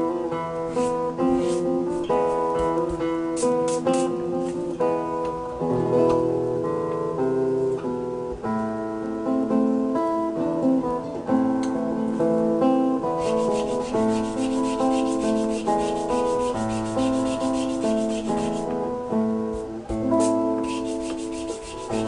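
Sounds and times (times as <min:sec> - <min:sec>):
acoustic guitar music: 0:00.0 - 0:22.0
sanding wood by hand: 0:00.7 - 0:02.4, 0:13.2 - 0:18.7, 0:19.6 - 0:22.0.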